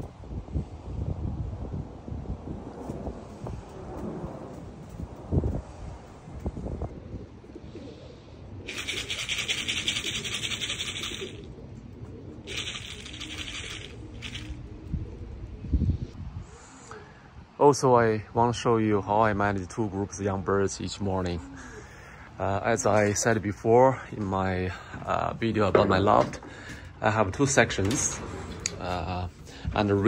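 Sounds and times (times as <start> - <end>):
wind rumble on microphone: 0.0 - 17.6, 19.2 - 30.0
faint bird sounds: 6.9 - 17.7, 19.0 - 25.5.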